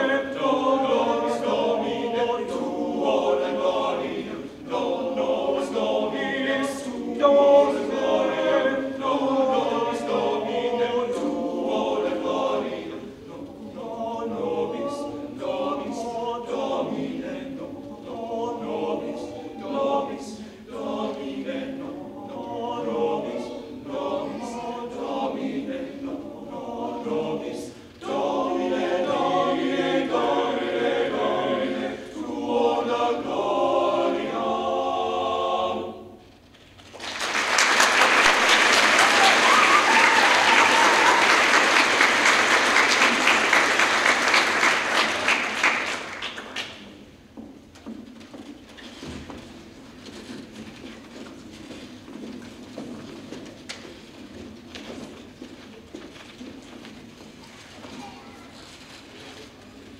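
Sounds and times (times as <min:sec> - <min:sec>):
men's choir singing a cappella: 0:00.0 - 0:36.3.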